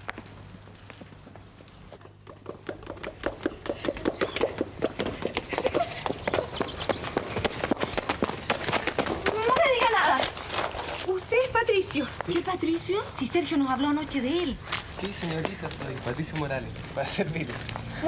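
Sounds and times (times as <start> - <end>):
steps clattering on hard ground: 0.0 - 18.0.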